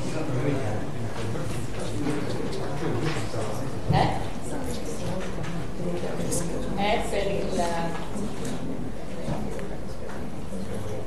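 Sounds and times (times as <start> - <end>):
low voices talking quietly: 0.0 - 11.0
steady room hum: 0.0 - 11.0.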